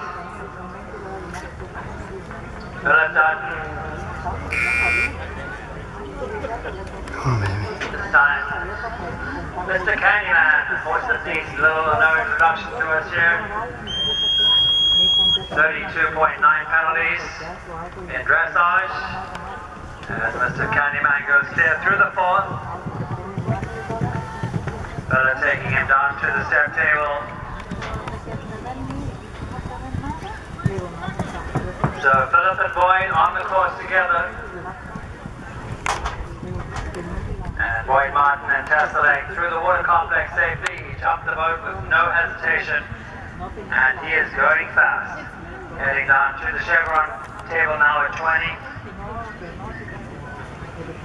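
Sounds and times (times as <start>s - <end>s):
electronic buzzer: 4.5s - 5.2s
horse hoofbeats on sand: 19.7s - 33.6s, 34.3s - 37.3s.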